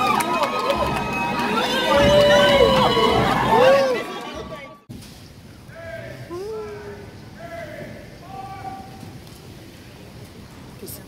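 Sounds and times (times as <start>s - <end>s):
crowd hubbub in hall: 0.0s - 4.9s.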